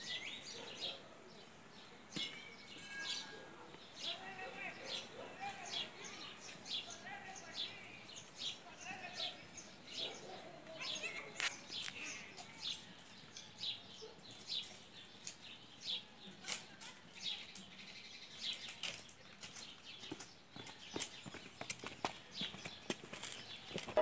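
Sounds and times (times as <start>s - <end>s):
bird chirping: 0.0s - 24.0s.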